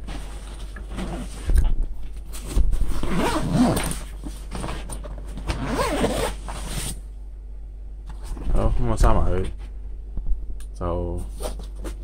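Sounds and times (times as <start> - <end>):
zipper being pulled closed: 3.0 - 4.0, 5.5 - 7.0.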